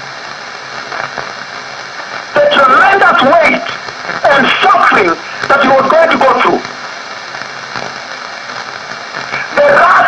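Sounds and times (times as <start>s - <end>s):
radio hiss: 0.0s - 10.0s.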